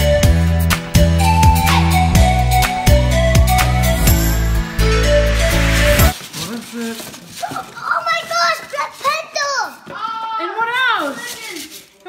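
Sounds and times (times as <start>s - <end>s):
child's excited exclamations: 7.4s - 11.6s.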